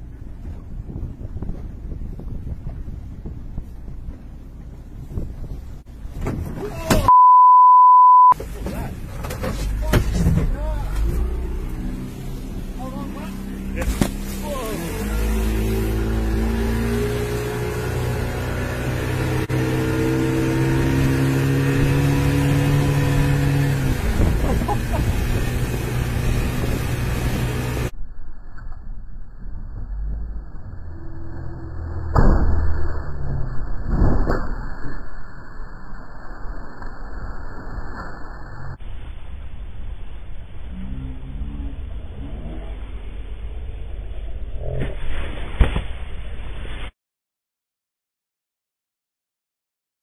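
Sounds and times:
outboard motor running hard: 11.0 - 27.9
wind and water rushing: 11.0 - 27.9
sharp splashes or knocks: 13.8 - 14.4.

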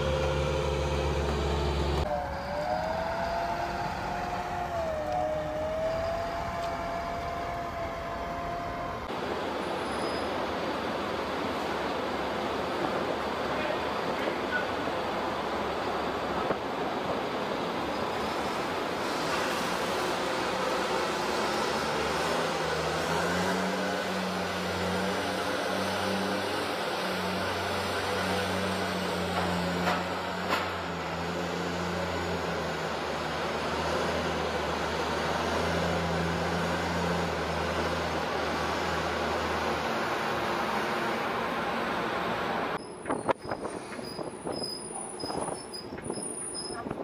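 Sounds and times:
heavy engine low hum: 0.0 - 47.0.

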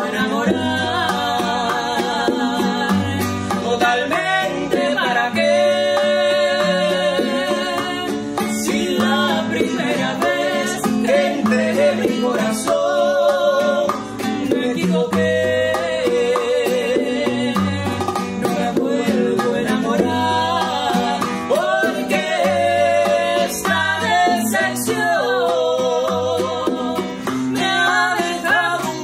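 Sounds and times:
acoustic guitar strummed and plucked: 0.0 - 29.0
bongos: 0.0 - 29.0
woman singing a ballad: 0.0 - 29.0.

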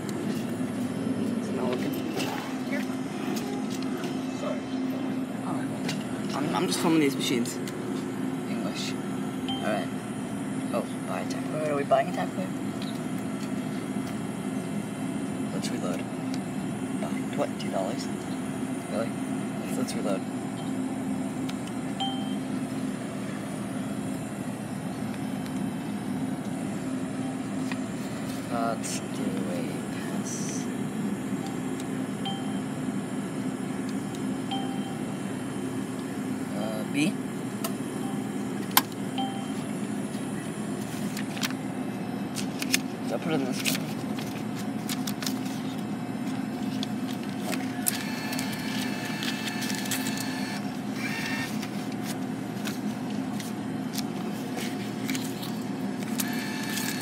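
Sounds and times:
high whine: 0.0 - 41.5
low mechanical drone: 0.0 - 57.0
ticket machine electronic beep: 9.5 - 9.8, 22.0 - 22.5, 34.5 - 35.1, 39.2 - 39.6
bill acceptor whirring: 44.2 - 52.8, 54.2 - 57.0.

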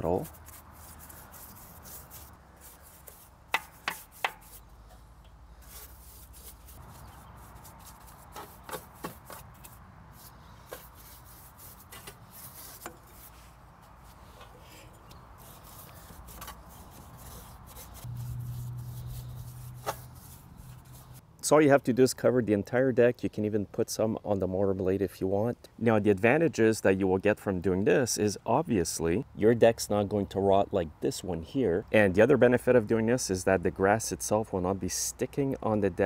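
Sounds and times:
paintbrush rubbing on metal: 0.0 - 4.7, 5.6 - 21.2
low hum: 17.8 - 21.2.

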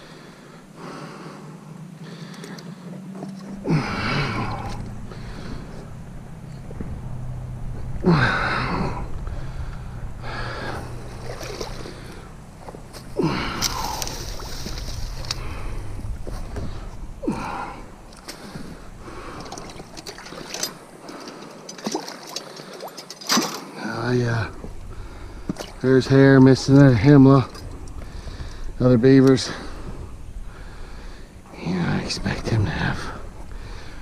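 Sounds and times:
man gasping and grunting: 3.6 - 5.7, 8.0 - 11.0, 13.2 - 14.2, 17.2 - 19.6
water sloshing: 9.2 - 23.8, 24.4 - 28.6.

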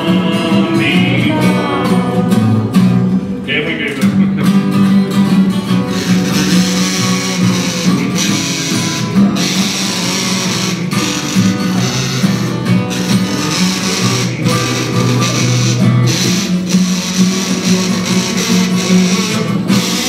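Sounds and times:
harmonica playing: 0.0 - 20.0
strummed acoustic guitar: 0.0 - 20.0.

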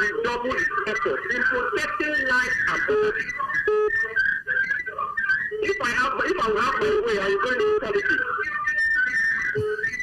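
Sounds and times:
garbled voice over telephone line: 0.0 - 8.6
short steady whistling tone: 8.5 - 10.0.

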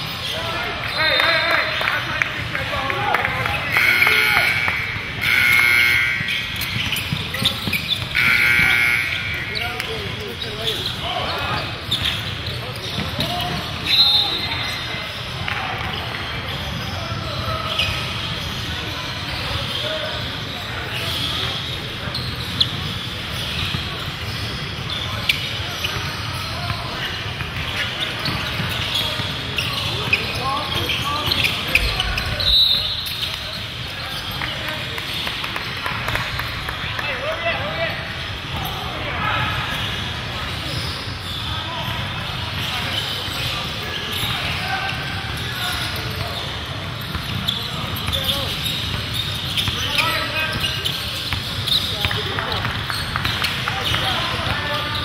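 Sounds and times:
sneaker squeaks: 0.0 - 55.0
echoing hall din: 0.4 - 10.2
ball bouncing on hardwood court: 51.3 - 54.6.

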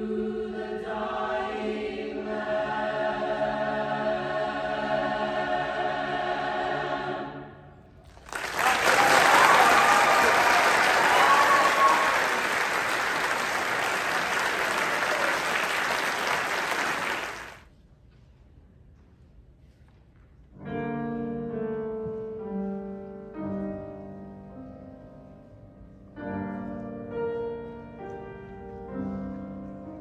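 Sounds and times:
choir holding chord: 0.0 - 7.8
audience applauding: 8.1 - 17.7
audience whooping: 8.3 - 17.6.

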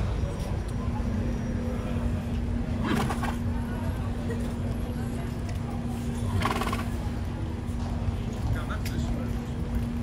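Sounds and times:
low street rumble: 0.0 - 10.0
horse calling: 6.4 - 6.9.

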